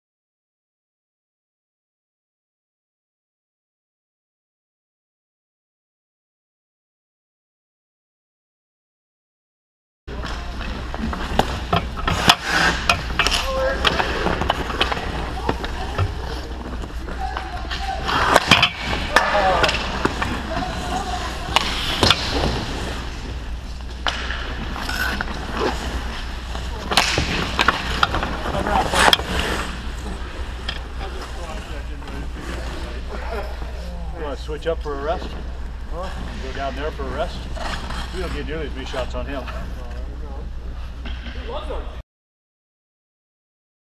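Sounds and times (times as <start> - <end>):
faint players' voices: 10.1 - 42.0
sticks and puck knocking: 10.2 - 20.6
skate blades scraping ice: 10.2 - 33.7, 36.0 - 39.8.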